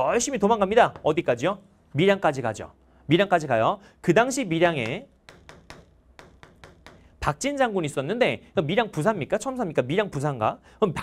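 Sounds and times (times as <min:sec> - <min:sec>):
writing taps on a board: 0:04.8 - 0:07.2.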